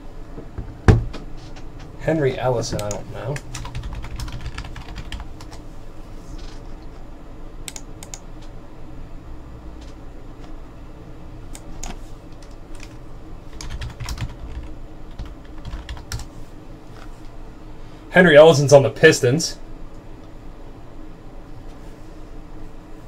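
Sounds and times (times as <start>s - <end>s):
computer keyboard typing: 2.7s - 5.6s, 7.7s - 8.2s, 11.5s - 16.3s.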